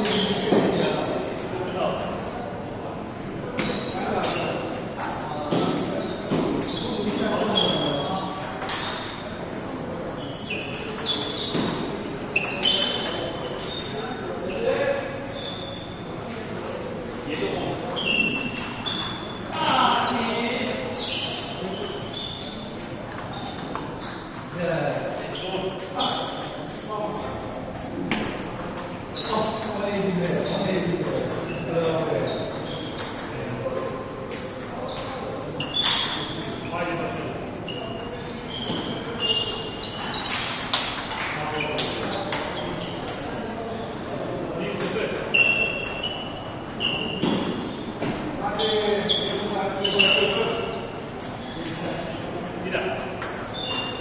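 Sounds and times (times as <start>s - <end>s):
people talking: 0.0s - 15.5s, 19.5s - 22.2s, 24.5s - 40.1s, 41.2s - 45.8s, 48.1s - 53.5s
voices in a hall: 0.0s - 54.0s.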